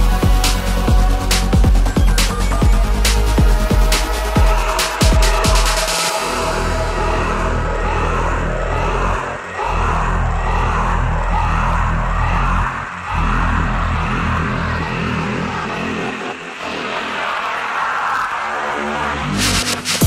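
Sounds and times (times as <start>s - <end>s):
bass-heavy electronic dance music: 0.0s - 20.0s.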